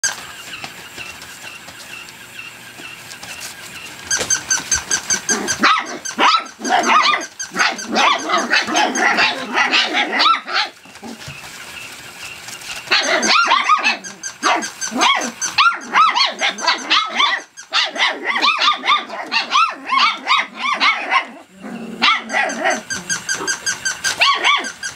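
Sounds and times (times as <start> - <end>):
puppies yapping and growling: 0.0 - 24.9.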